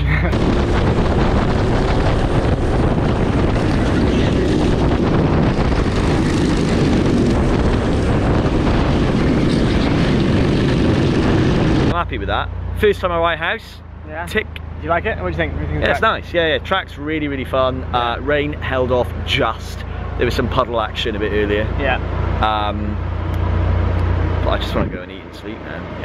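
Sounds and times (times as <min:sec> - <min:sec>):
wind noise on microphone: 0:00.0 - 0:12.1
go-kart engines running: 0:00.0 - 0:13.5.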